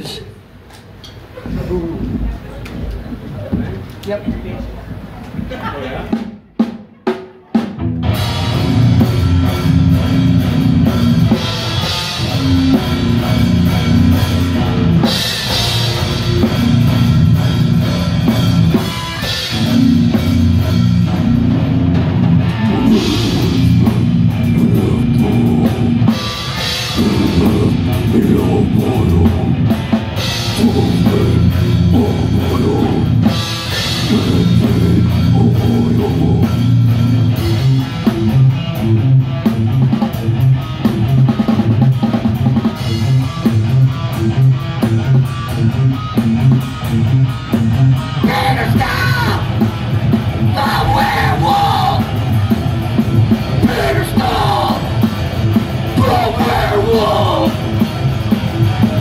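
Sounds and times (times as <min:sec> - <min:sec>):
death metal band playing: 0:05.4 - 0:59.0.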